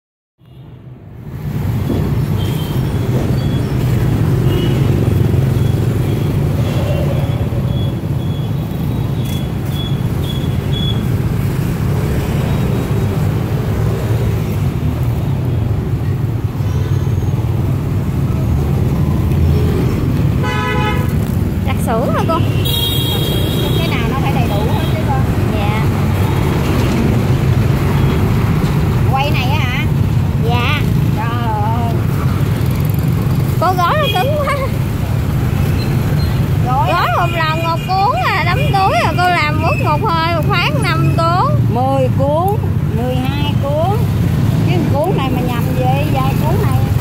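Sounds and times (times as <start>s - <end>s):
traffic engines rumbling: 0.4s - 47.0s
horn toot: 20.4s - 21.3s, 22.2s - 24.0s.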